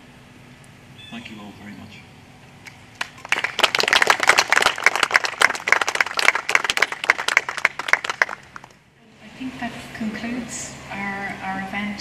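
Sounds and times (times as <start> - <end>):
audience applauding: 3.0 - 8.8.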